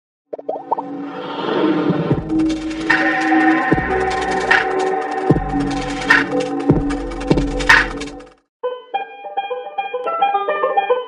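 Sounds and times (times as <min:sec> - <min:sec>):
music bed: 0:02.8 - 0:11.0.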